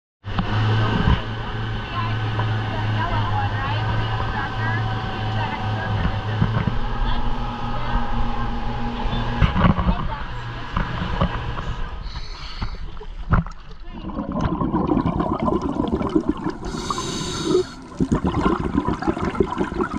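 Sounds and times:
outboard motor droning: 0:00.2 - 0:19.9
rush of boat wake: 0:00.3 - 0:13.1, 0:16.2 - 0:18.2.

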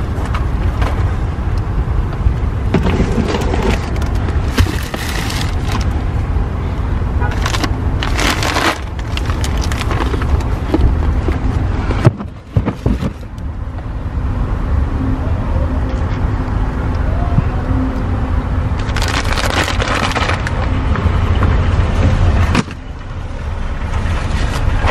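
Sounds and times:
car rumble: 0:00.0 - 0:24.9.

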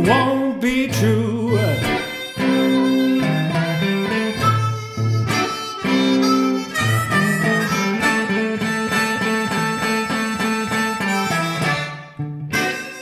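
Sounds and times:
strummed guitar: 0:00.0 - 0:13.0
harmonica playing blues: 0:01.0 - 0:13.0.

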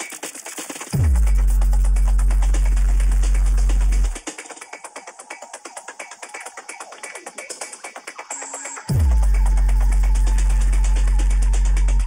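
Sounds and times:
electronic dance music: 0:00.0 - 0:12.0
hi-hat ticks: 0:00.0 - 0:12.0.

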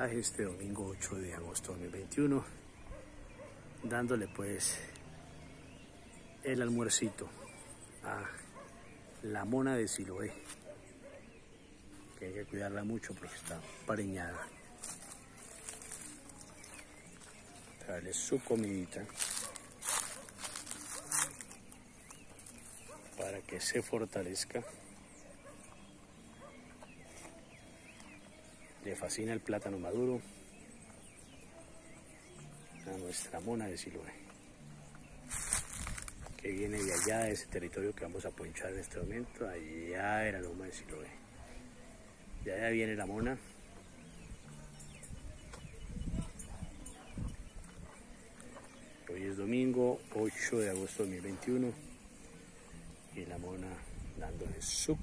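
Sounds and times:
cow hooves thudding on leaves: 0:14.7 - 0:22.8, 0:35.2 - 0:37.3.

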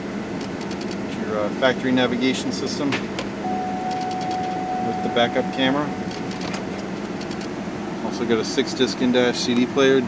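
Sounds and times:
car engine idling: 0:00.0 - 0:10.0
climate control fan blowing: 0:00.0 - 0:10.0.

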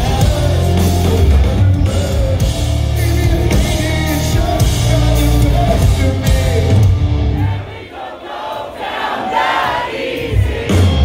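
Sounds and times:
pop-punk band playing live: 0:00.0 - 0:07.8, 0:09.4 - 0:11.0
crowd singing and shouting: 0:00.0 - 0:11.0.

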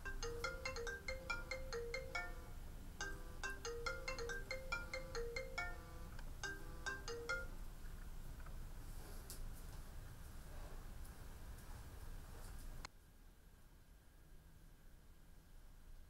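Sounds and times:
smartphone melodic ringtone: 0:00.0 - 0:07.6.

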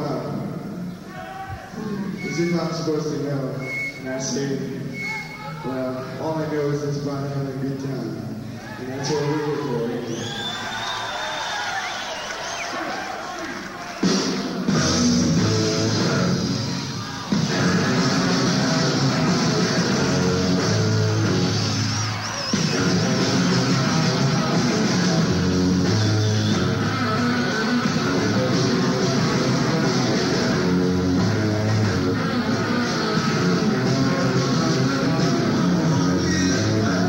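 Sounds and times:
live rock band: 0:09.6 - 0:37.0.

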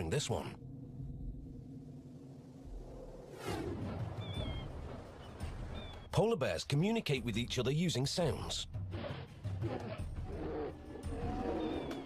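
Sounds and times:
polar bears roaring: 0:08.9 - 0:12.0.

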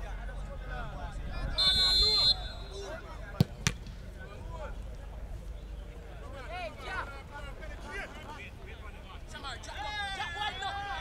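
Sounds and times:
voices calling out and shouting: 0:00.0 - 0:11.0.

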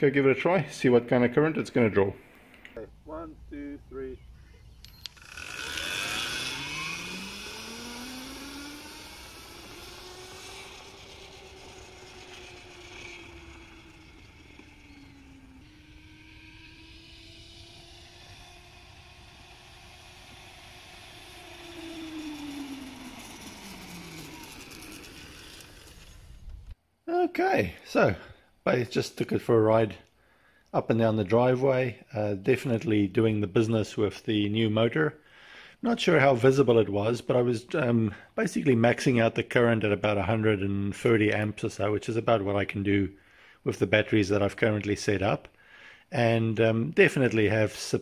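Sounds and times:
electric motorbike motor whining: 0:03.1 - 0:26.8.

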